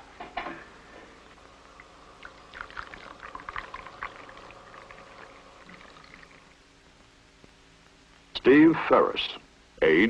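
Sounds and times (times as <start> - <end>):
coffee pouring into cup: 1.3 - 6.6.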